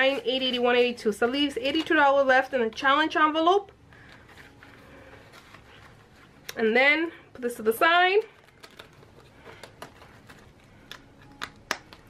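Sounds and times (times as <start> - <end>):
plastic binder handling clicks: 8.4 - 12.0.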